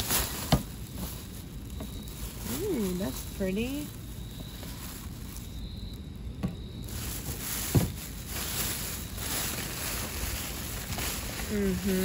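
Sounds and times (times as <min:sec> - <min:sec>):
plastic bags rustling: 0:00.0 - 0:12.0.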